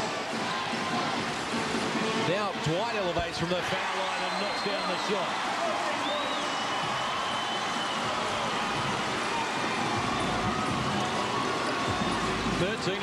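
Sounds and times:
basketball play on court: 0.0s - 13.0s
crowd hubbub in arena: 0.0s - 13.0s.

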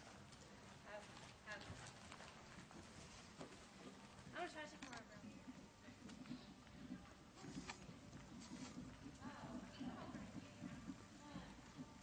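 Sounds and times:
hoofbeats on dirt: 0.8s - 12.0s.

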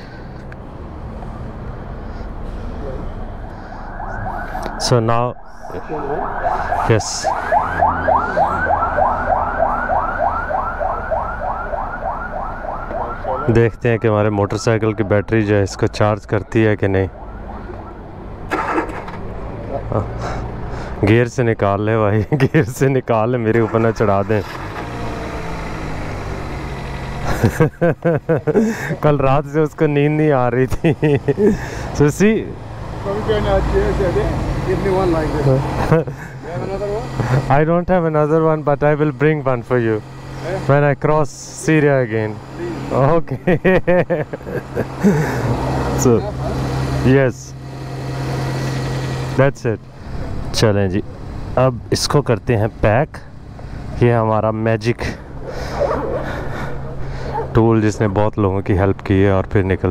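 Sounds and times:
car starter cranking engine: 18.5s - 19.3s.

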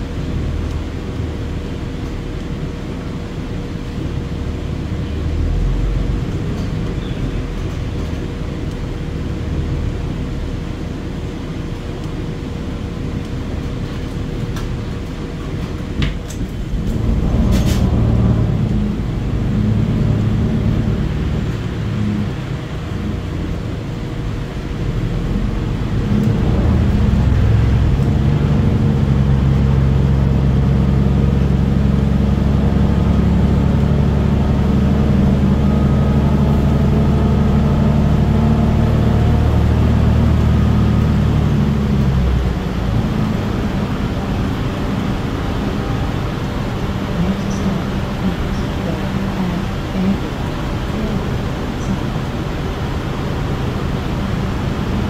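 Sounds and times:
bus engine drone: 0.0s - 55.0s.

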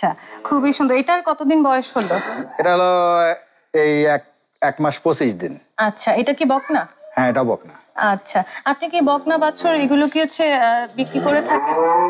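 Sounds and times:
cattle mooing: 11.0s - 12.0s.

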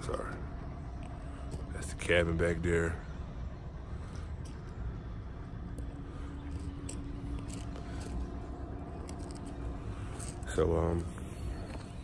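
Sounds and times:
faint steady hum: 0.0s - 12.0s
footsteps on gravel: 6.4s - 12.0s.

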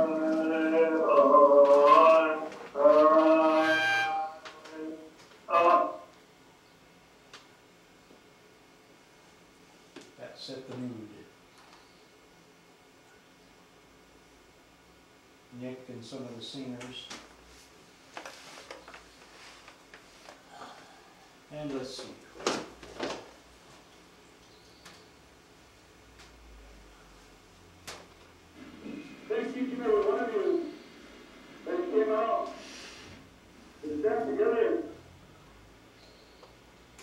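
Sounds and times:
voices singing long notes: 0.0s - 6.1s.

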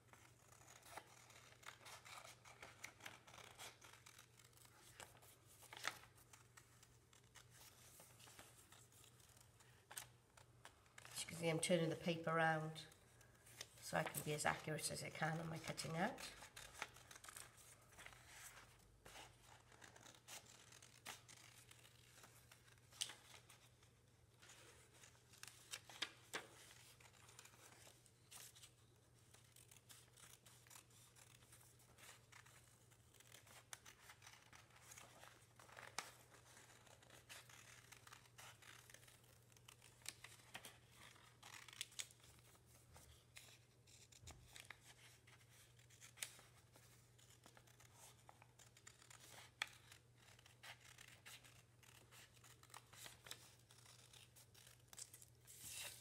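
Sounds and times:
paper rustling: 0.2s - 11.4s, 13.1s - 56.0s
scissors snipping paper: 47.2s - 55.2s.

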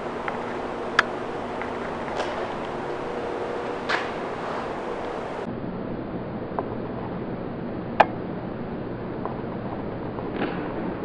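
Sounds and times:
background hiss: 0.0s - 5.5s
faint low hum: 0.0s - 11.0s.

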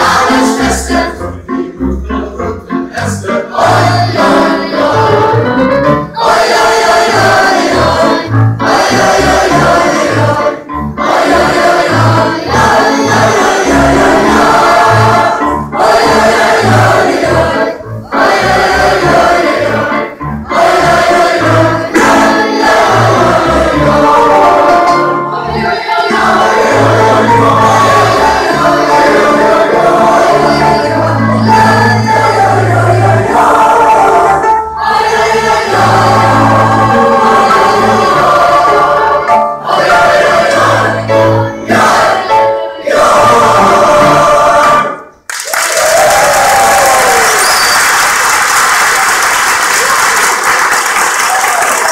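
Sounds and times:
mixed choir singing folk song: 0.0s - 45.3s.

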